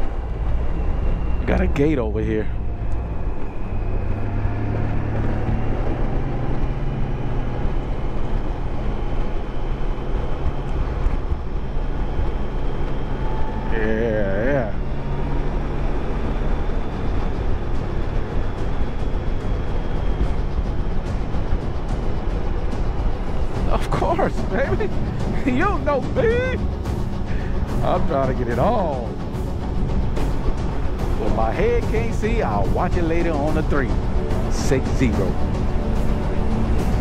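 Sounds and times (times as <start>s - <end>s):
motorcycle engine drone: 0.0s - 37.0s
wind and road noise: 0.0s - 37.0s.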